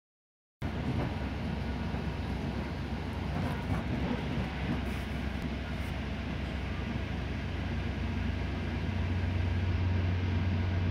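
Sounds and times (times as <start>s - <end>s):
train coach rumbling on track: 0.6s - 10.9s.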